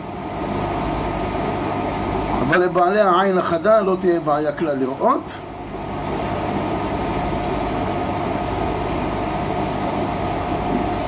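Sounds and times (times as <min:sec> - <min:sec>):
mechanical hum and hiss: 0:00.0 - 0:11.0.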